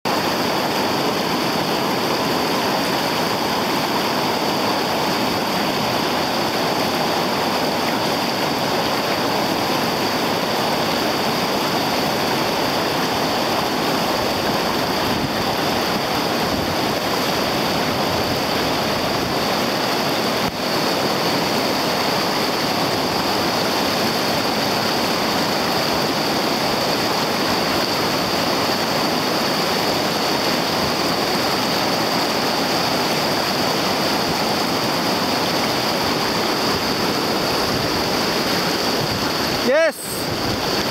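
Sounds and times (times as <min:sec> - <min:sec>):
whitewater rushing over rocks: 0:00.1 - 0:40.9.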